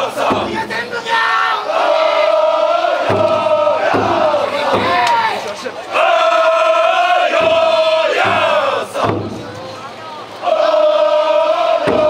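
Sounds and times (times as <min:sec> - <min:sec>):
group shouting calls in unison: 0:00.0 - 0:09.1, 0:10.4 - 0:12.0.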